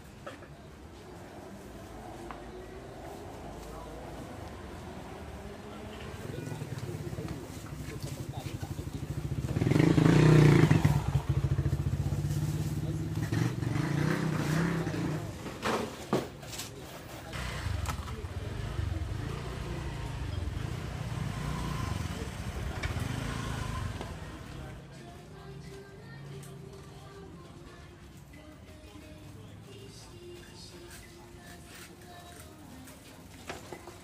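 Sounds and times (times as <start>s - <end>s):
motorcycle engine running: 6.3s - 15.3s, 17.4s - 24.6s.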